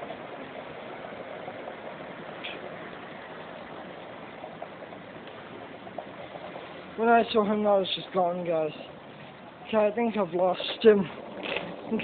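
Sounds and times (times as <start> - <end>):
steady outdoor background hiss: 0.0 - 12.0.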